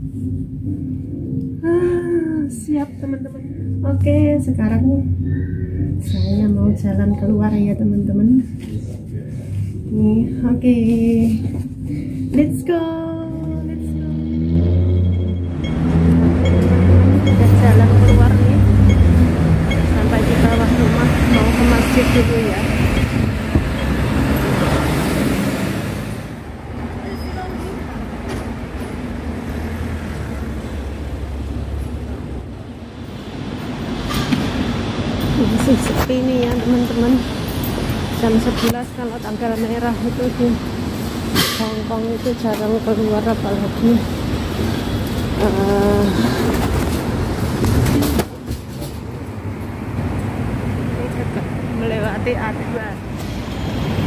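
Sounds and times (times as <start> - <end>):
traffic rumble: 0.0 - 54.0
person speaking: 1.6 - 11.6.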